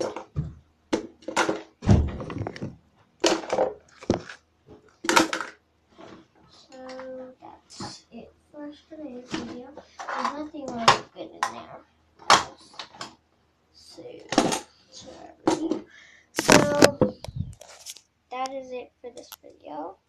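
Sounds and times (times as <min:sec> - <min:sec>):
plastic toys clattering: 0:01.0 - 0:07.2, 0:09.4 - 0:11.6
girl talking: 0:06.6 - 0:12.8, 0:13.8 - 0:17.6, 0:18.3 - 0:20.0.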